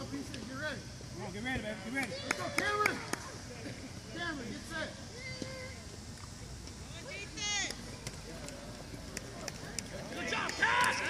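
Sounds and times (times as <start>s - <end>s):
distant shouting of players: 4.6s - 6.0s, 10.0s - 11.0s.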